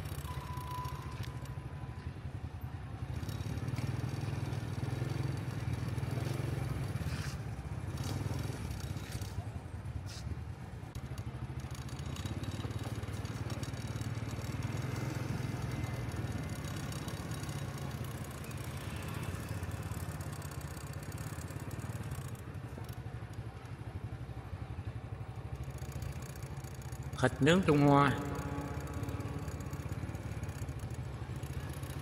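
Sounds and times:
motorbike engines passing: 0.0s - 32.0s
steady low traffic hum: 0.0s - 32.0s.

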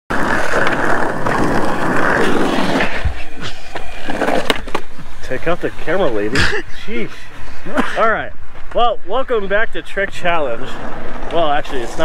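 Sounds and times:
skateboard wheels rolling on asphalt: 0.1s - 12.0s.

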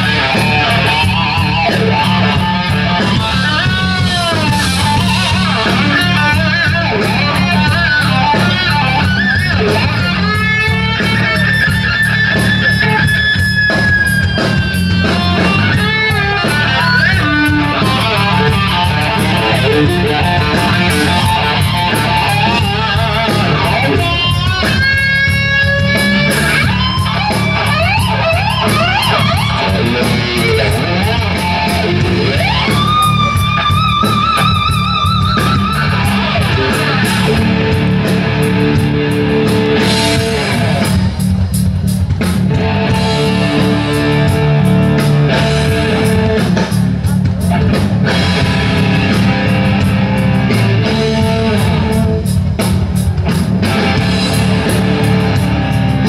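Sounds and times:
bass guitar: 0.0s - 56.0s
drums: 0.0s - 56.0s
electric guitar lead: 0.0s - 56.0s.

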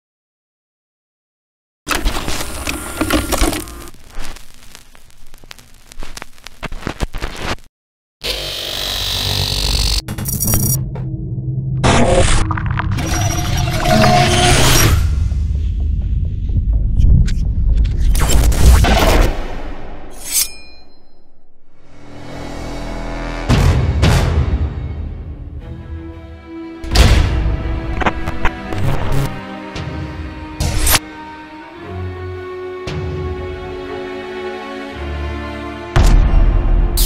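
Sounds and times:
crackles and pops: 2.0s - 7.7s
pulsing low drone: 13.0s - 18.0s
deep rumbling bass: 15.0s - 18.8s
loud cinematic hit: 22.4s - 25.5s.

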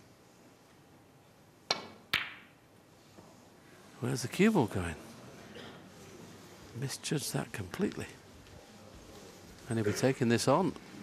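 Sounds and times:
cue tip striking ball: 1.7s - 2.6s.

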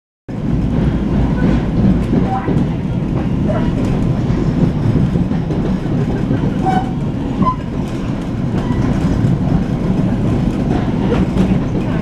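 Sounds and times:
train wheels rumbling on rails: 0.3s - 12.0s.

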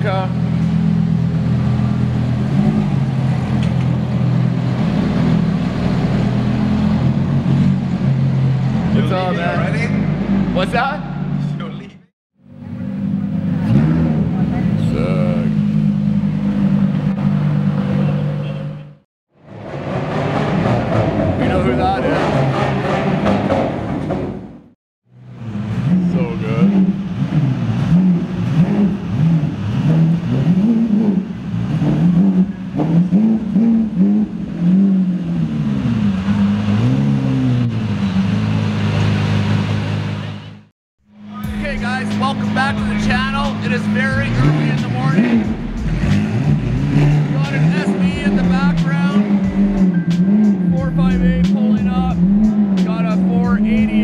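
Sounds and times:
car engines idling and revving: 0.0s - 54.0s.

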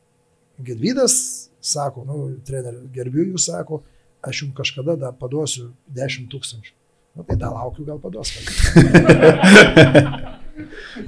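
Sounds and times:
people laughing: 8.2s - 11.0s.

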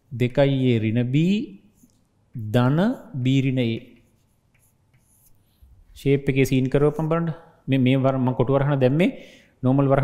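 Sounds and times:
chalk scratching on blackboard: 1.7s - 2.1s, 2.7s - 5.9s.

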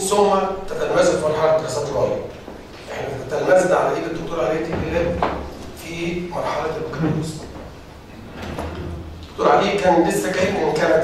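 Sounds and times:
person speaking into a microphone: 0.0s - 7.6s, 8.8s - 11.0s.

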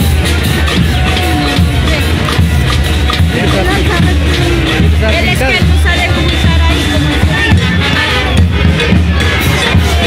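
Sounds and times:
carnival street band music: 0.0s - 10.0s
crowd voices: 0.0s - 10.0s
percussion beating: 0.0s - 10.0s.

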